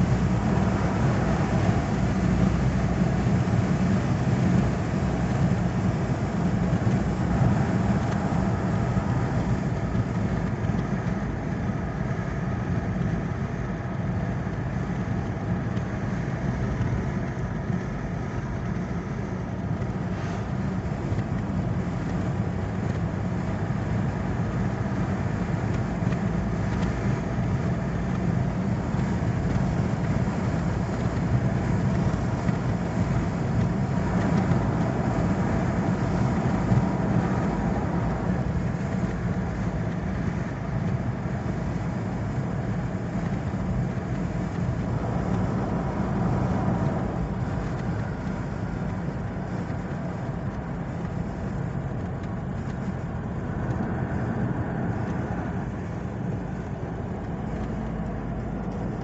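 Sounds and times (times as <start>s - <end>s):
car road and engine noise: 0.0s - 59.0s.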